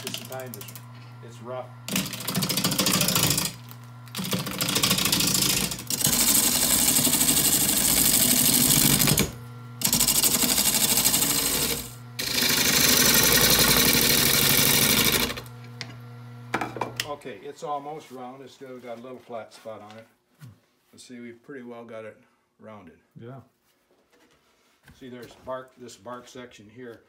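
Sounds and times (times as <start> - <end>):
lathe motor hum: 0.0 - 17.1.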